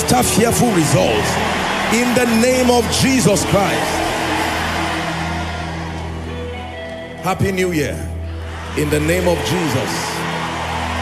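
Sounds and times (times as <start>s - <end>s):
church music sustained chords: 0.0s - 11.0s
congregation cheering: 0.0s - 11.0s.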